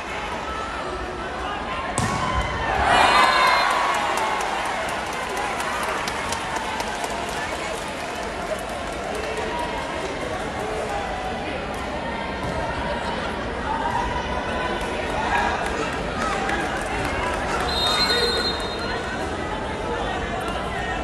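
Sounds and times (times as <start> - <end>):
crowd chatter: 0.0 - 21.0
crowd shouting and cheering: 0.0 - 21.0.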